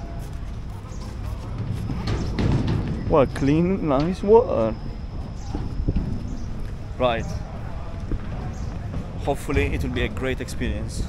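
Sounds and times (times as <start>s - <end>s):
faint voices: 0.0s - 11.0s
footsteps on metal pontoon: 0.0s - 11.0s
wind buffeting microphone: 0.0s - 11.0s.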